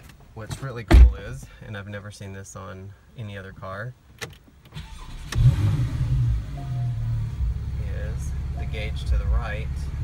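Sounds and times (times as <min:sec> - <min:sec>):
ignition click: 0:04.2 - 0:05.6
car engine starting and idling: 0:04.2 - 0:10.0.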